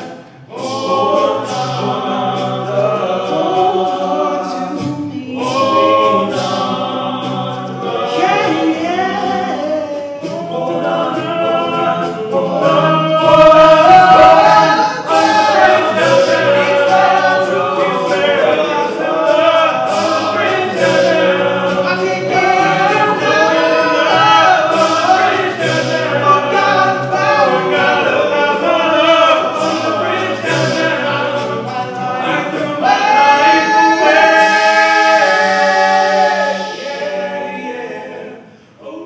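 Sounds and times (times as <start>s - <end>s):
male a cappella group singing: 0.0s - 39.0s.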